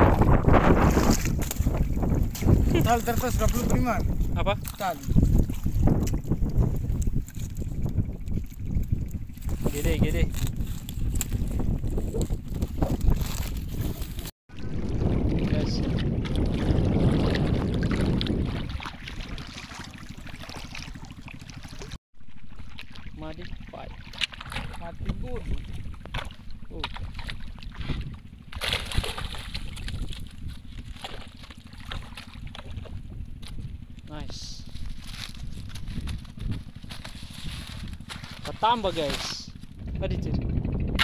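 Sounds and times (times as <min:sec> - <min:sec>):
wind buffeting microphone: 0:00.0 - 0:22.0, 0:22.9 - 0:41.0
water sloshing from wading: 0:00.0 - 0:39.8.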